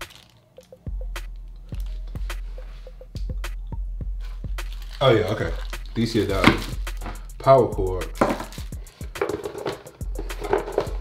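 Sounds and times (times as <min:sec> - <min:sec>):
packaging being handled: 0:00.0 - 0:00.8, 0:04.6 - 0:07.3, 0:08.1 - 0:11.0.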